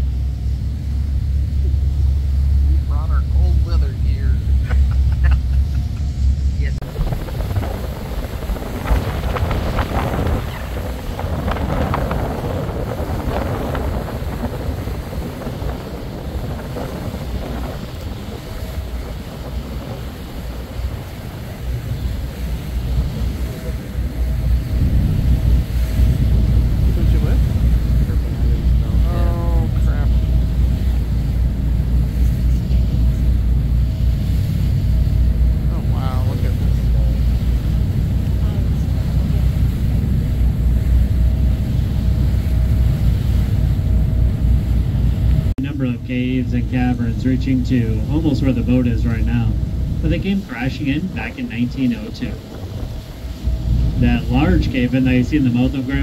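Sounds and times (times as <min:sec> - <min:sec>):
boat engine rumble: 0:00.0 - 0:56.0
water rushing past hull: 0:00.0 - 0:56.0
wind buffeting microphone: 0:00.0 - 0:56.0.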